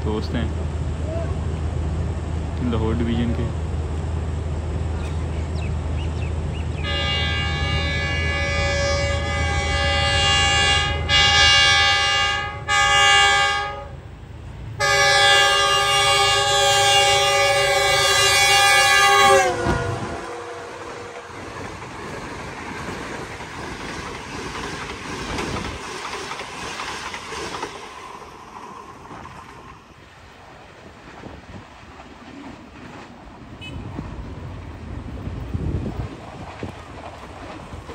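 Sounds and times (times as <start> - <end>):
locomotive engine rumble: 0.0 - 37.9
train horn blasts: 6.8 - 14.0, 14.8 - 21.5, 33.6 - 34.0
train coaches clacking on rails: 16.0 - 37.9.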